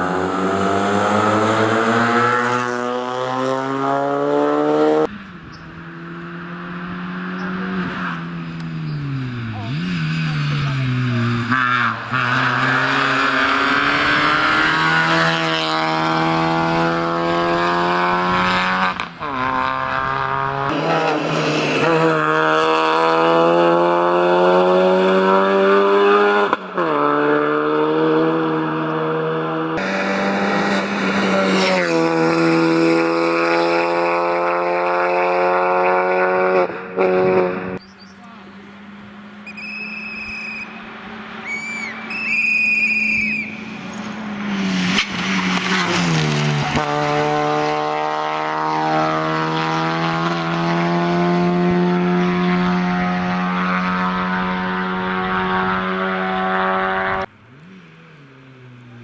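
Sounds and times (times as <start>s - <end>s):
rally car engine at high revs: 0.0s - 42.2s, 43.5s - 59.0s.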